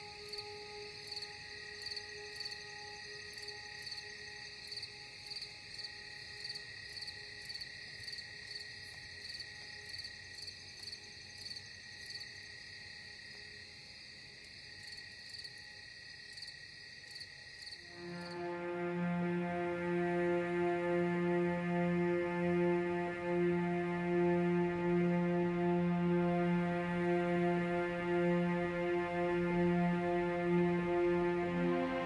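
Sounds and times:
pulsing cricket-like chirping: 0:00.0 - 0:20.2
soft drone tones: 0:17.9 - 0:32.0.

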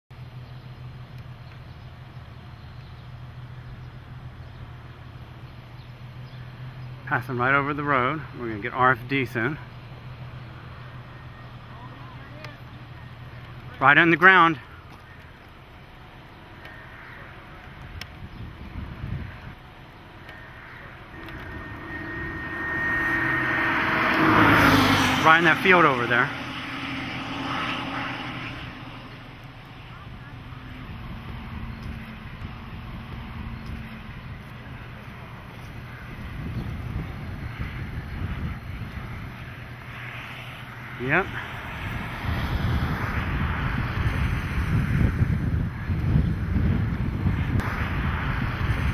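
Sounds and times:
vehicle engine idling: 0:00.1 - 0:14.0, 0:14.6 - 0:40.0
outdoor background noise: 0:00.1 - 0:48.9
steady low hum: 0:17.2 - 0:36.3
wind blowing across microphone: 0:17.6 - 0:20.4, 0:21.0 - 0:48.9.

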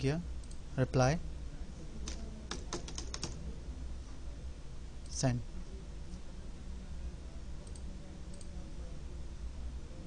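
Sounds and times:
computer keyboard typing: 0:02.0 - 0:03.4.

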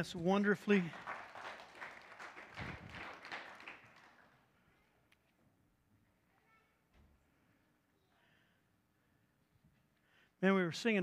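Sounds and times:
congregation applauding: 0:00.6 - 0:04.5.

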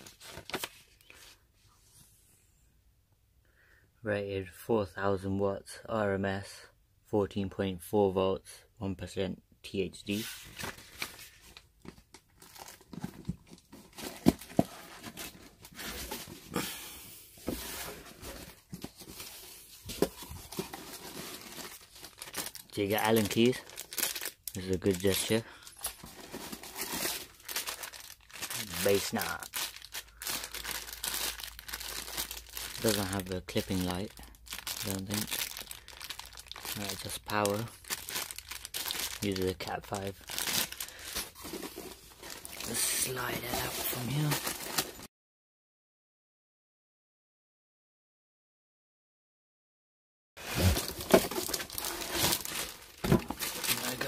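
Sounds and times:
cardboard rustling and scraping: 0:10.1 - 0:16.5, 0:17.4 - 0:21.9, 0:25.9 - 0:27.3, 0:40.4 - 0:45.1, 0:50.4 - 0:54.0
cable handled in bag crackles: 0:17.8 - 0:33.2, 0:50.4 - 0:54.0
plastic bag crinkling: 0:19.1 - 0:45.1, 0:50.5 - 0:54.0.

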